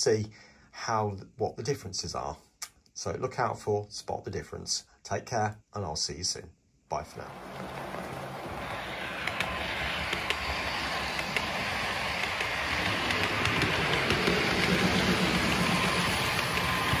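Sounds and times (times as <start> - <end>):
model train motor humming: 7.2 - 17.0
wheels clicking over rail joints: 7.2 - 17.0.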